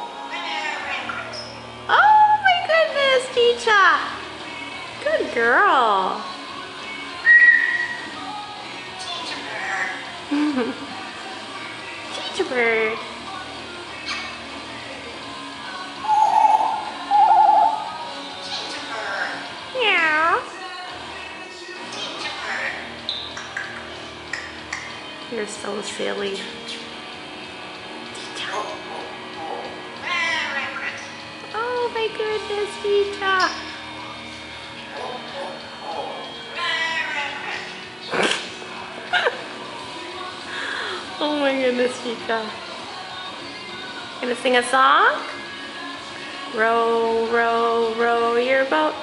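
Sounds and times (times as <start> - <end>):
parrot swooping whistle: 7.2 - 8.0, 16.0 - 18.0
parrot warbling trills: 16.0 - 18.1.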